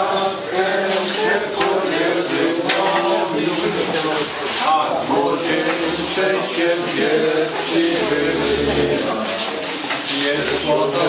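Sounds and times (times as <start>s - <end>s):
group of people singing: 0.0s - 11.0s.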